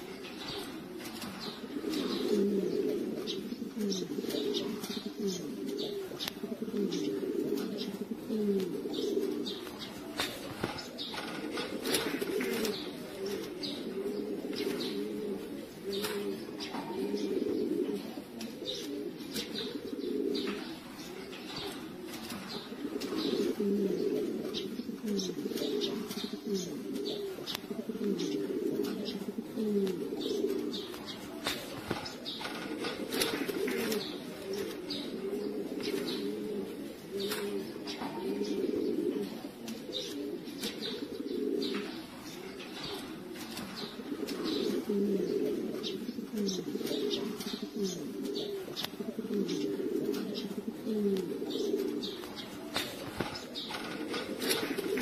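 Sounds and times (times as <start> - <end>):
pigeons cooing: 0.0 - 55.0.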